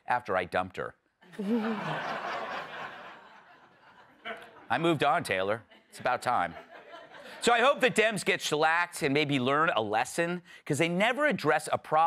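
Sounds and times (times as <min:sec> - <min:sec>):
studio audience laughing: 0:01.3 - 0:04.9, 0:05.7 - 0:08.2.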